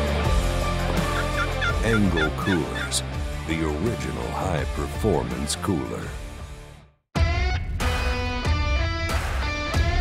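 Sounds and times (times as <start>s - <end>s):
background music: 0.0s - 10.0s
turkey box call yelps: 1.0s - 3.0s.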